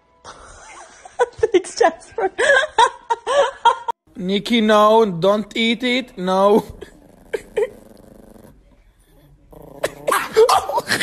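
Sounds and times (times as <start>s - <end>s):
dog growling quietly: 6.8s - 10.1s.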